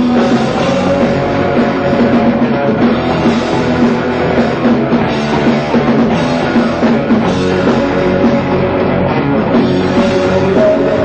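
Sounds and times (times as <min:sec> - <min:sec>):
heavy metal band playing live: 0:00.0 - 0:11.0.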